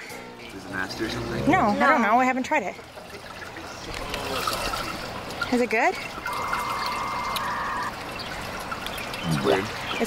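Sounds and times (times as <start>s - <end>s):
water trickling: 0.5s - 10.0s
high steady tone: 6.2s - 8.0s.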